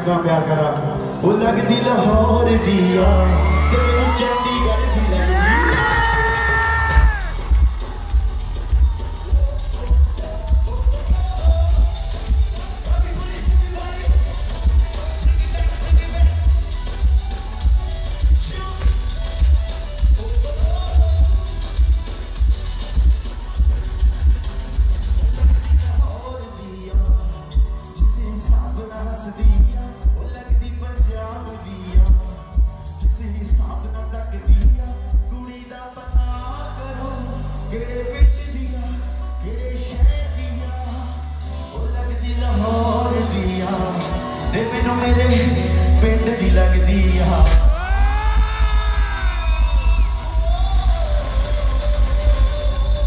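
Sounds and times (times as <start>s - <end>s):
man singing: 0.0s - 23.8s, 25.5s - 53.0s
live pop band playing: 0.0s - 53.0s
pulsing bass beat: 5.3s - 35.4s, 36.1s - 36.7s, 44.8s - 53.0s.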